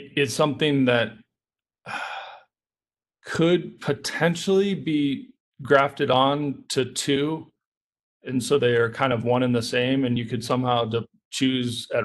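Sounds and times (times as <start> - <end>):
man breathing into microphone: 1.9 - 2.5.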